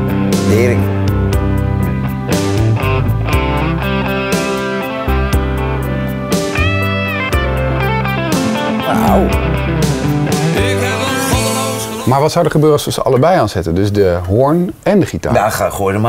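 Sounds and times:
electric guitar solo: 0:02.3 - 0:12.1.

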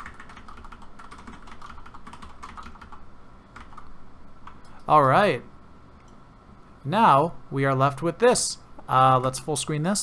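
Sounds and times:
computer keyboard clicks: 0:00.0 - 0:03.0.

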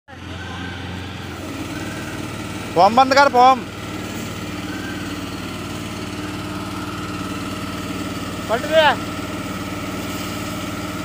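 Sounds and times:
engine humming: 0:00.1 - 0:11.0.

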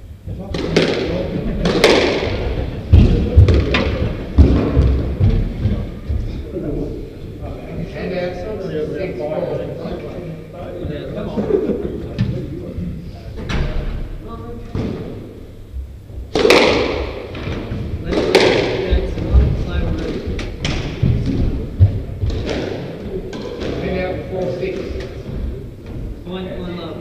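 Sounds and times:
squash ball hitting rackets and walls: 0:00.4 - 0:06.0, 0:16.3 - 0:26.2.

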